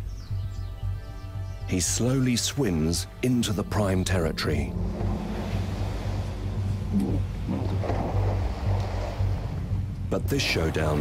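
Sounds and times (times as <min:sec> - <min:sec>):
water churned by swimming hippo: 0:04.7 - 0:11.0
wind rumble on microphone: 0:04.7 - 0:11.0.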